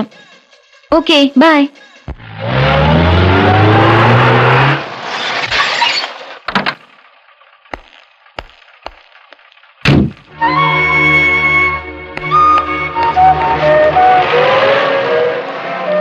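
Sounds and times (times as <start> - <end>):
car engine driving: 1.8 - 16.0
car door slam: 9.8 - 10.3
film music: 10.3 - 16.0.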